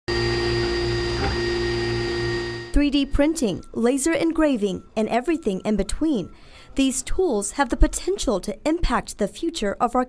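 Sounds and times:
printer motors whining: 0.1 - 2.8.

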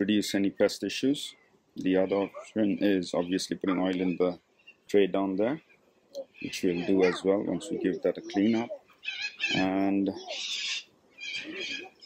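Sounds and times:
man speaking quietly: 1.0 - 5.6, 6.2 - 8.8.

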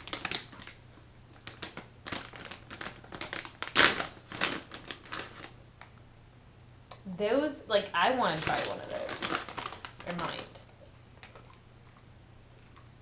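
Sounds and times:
plastic pouch crinkling: 0.0 - 5.9, 8.3 - 11.5.

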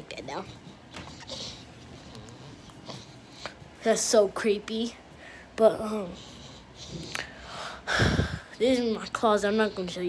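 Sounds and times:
person breathing close to microphone: 5.1 - 8.6.

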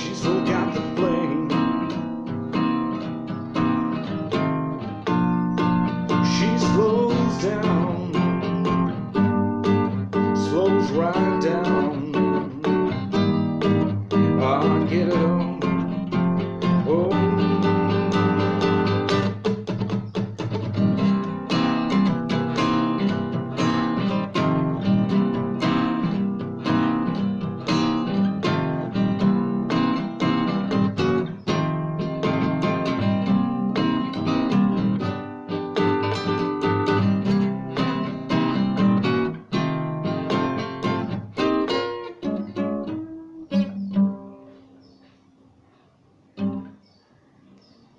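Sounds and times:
acoustic guitar playing: 0.0 - 47.0.

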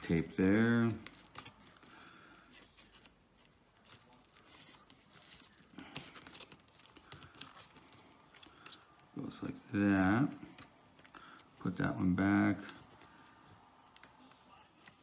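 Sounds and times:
tape peeling: 0.0 - 9.4
faint clicks and rustles of fingers: 0.0 - 15.0.

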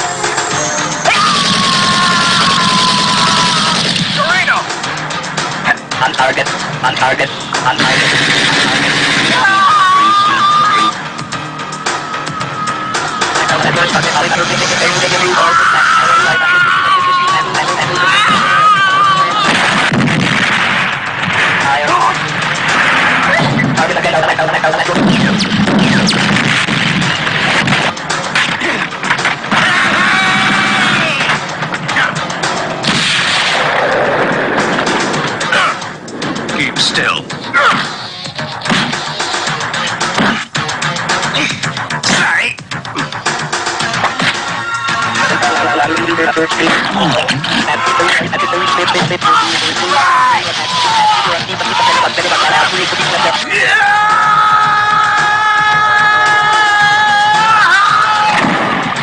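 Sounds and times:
action film music: 0.0 - 59.0
loud dense din: 1.1 - 5.0, 5.8 - 11.5, 13.0 - 43.0, 44.6 - 59.0
explosions: 1.2 - 4.5, 7.8 - 9.6, 19.4 - 24.0, 24.8 - 31.4, 32.8 - 39.2, 58.3 - 59.0
man yelling: 9.4 - 11.0, 47.6 - 52.6
crashing impacts: 19.5 - 23.8.

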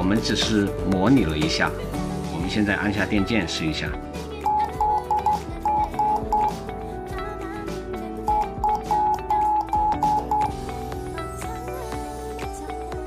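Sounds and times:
morse code beeps: 4.4 - 6.6, 8.3 - 10.6.

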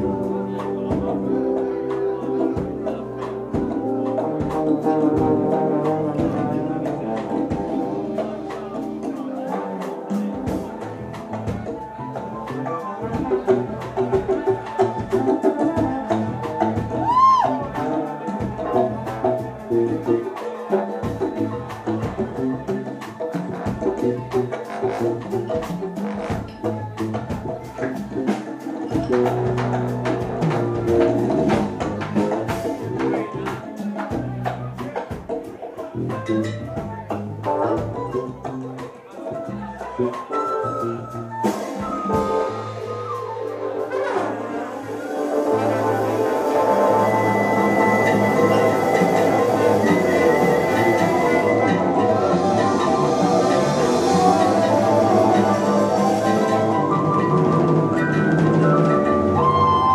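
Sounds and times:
salsa band playing: 0.0 - 59.9
swooping pitched note: 42.1 - 59.9.

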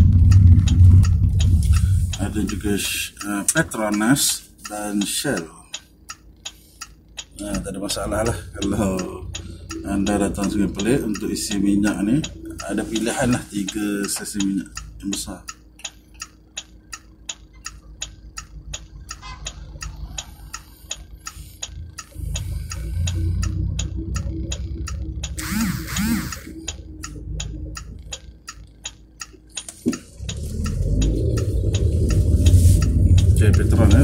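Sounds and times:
low vehicle rumble: 0.0 - 4.1, 5.9 - 34.0
car turn signal ticking: 0.0 - 34.0.

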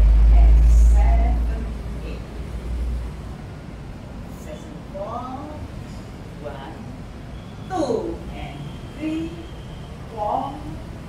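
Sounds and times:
loud deep rumble: 0.0 - 3.2.

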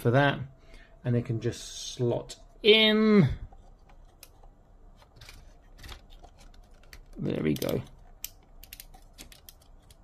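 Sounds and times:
hard plastic parts clicking: 3.5 - 10.0.

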